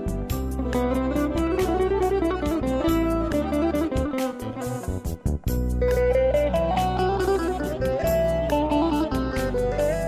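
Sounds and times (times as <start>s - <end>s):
keyboard melody: 0.0s - 10.0s
light percussive strokes: 0.0s - 10.0s
low accompaniment: 0.0s - 10.0s
plucked lute melody: 0.2s - 10.0s.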